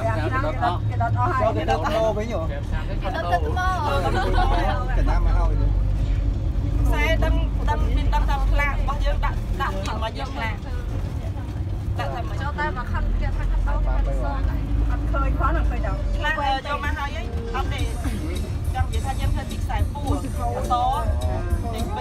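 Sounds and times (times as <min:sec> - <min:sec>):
women chatting: 0:00.0 - 0:02.2, 0:02.9 - 0:05.8, 0:06.4 - 0:22.0
bus engine rumble: 0:00.0 - 0:22.0.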